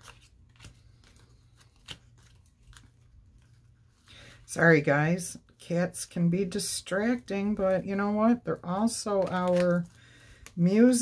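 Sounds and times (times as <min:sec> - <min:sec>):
cards clicking and rustling: 0:00.0 - 0:03.6, 0:08.8 - 0:10.6.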